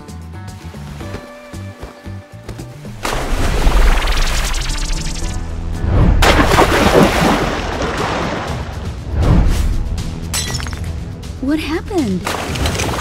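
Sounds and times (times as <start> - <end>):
background music: 0.0 - 13.0
cartoon crashing and splashing: 3.0 - 5.3, 6.1 - 8.5.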